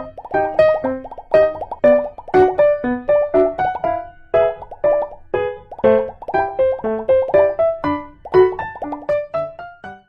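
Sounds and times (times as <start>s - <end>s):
bouncy background music: 0.0s - 10.0s.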